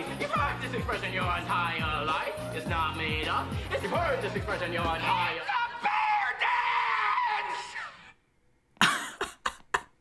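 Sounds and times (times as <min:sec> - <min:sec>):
man screaming: 0:05.0 - 0:08.1.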